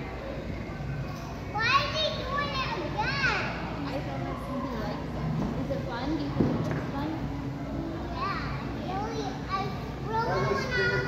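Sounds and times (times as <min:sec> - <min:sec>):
children chattering: 0:07.7 - 0:11.0.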